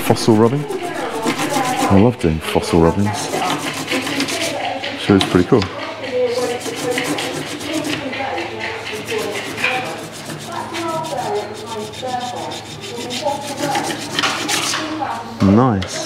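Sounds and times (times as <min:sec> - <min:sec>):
crayon rasping on paper: 0:00.0 - 0:15.3.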